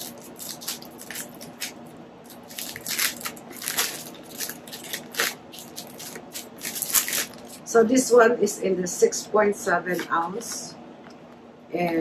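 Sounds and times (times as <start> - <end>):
plastic wrapping crackling: 0.0 - 7.7.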